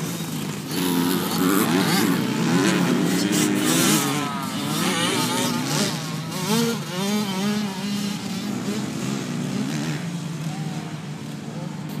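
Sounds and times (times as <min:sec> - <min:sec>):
dirt bike engines revving: 0:00.0 - 0:12.0.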